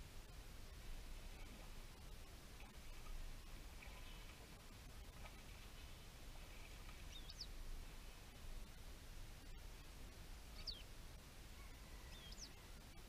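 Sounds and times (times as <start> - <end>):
low steady rumble: 0.0 - 13.0
bird chirps: 7.1 - 7.6, 10.6 - 10.9, 11.8 - 12.6.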